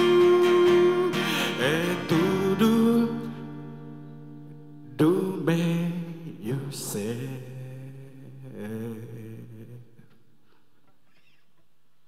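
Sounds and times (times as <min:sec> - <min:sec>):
man singing: 0:00.0 - 0:03.8, 0:04.8 - 0:10.2
acoustic guitar strumming: 0:00.0 - 0:07.9.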